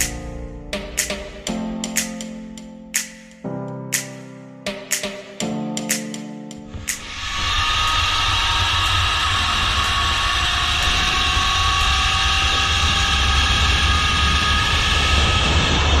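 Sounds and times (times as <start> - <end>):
wind rumbling on microphone: 6.7 - 16.0
zipline trolley whining on cable: 7.0 - 16.0.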